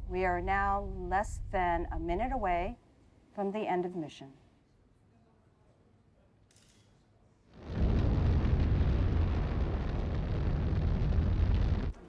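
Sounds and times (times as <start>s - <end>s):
deep rumbling rush: 7.6s - 12.0s.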